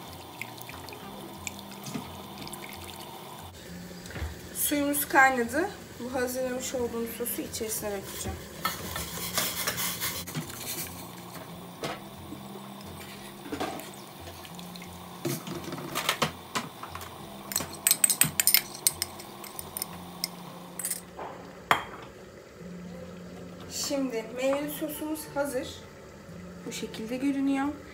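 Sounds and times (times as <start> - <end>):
pouring sauce: 0.0 - 3.7, 13.9 - 15.4
whisk stirring sauce in pot: 8.0 - 11.1.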